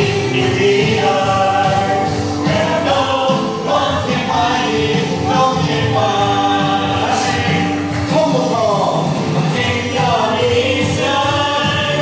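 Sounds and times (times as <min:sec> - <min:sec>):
young voices singing gospel: 0:00.0 - 0:08.1, 0:09.4 - 0:12.0
hands clapping: 0:00.0 - 0:12.0.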